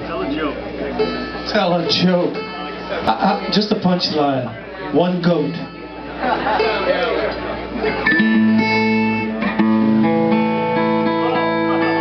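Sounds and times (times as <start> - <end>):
acoustic guitar strummed chords: 0.9 - 3.9, 5.1 - 12.0.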